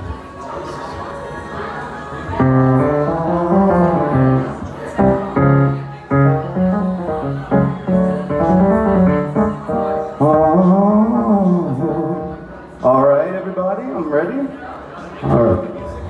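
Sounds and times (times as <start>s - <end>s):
electronic keyboard: 2.3s - 12.9s
man singing: 10.2s - 12.4s.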